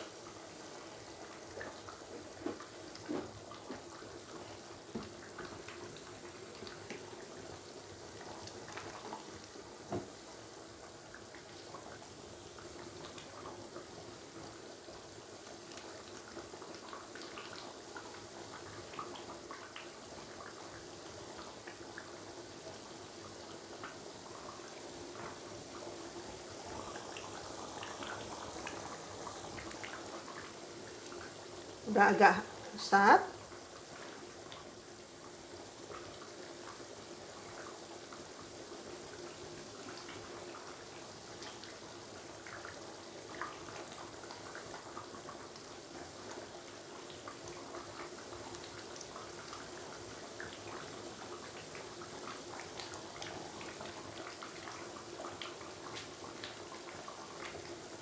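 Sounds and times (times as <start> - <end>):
curry bubbling in a wok: 0.0 - 58.0.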